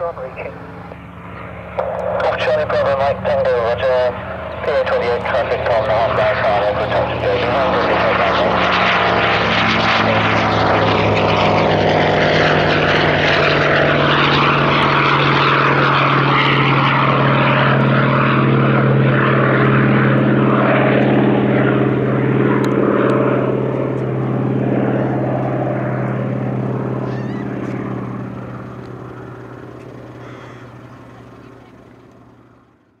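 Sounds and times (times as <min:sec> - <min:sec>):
aircraft engine drone: 0:00.0 - 0:33.0
propeller noise: 0:00.0 - 0:33.0.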